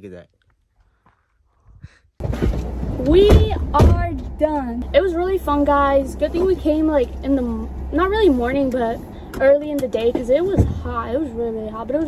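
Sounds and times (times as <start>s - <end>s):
low rumble with hiss in car cabin: 2.2s - 12.0s.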